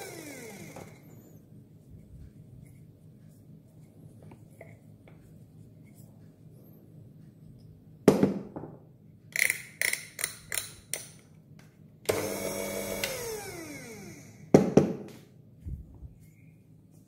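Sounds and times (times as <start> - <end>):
grinder motor whine: 0.0 - 1.3, 12.1 - 14.5.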